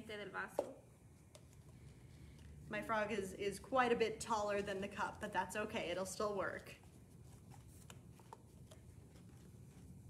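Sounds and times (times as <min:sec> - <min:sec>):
woman's voice: 0:00.0 - 0:00.8, 0:02.7 - 0:06.8.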